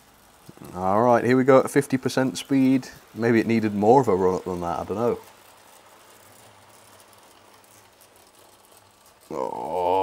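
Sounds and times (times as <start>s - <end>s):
model train wheels rattling: 0.0s - 10.0s.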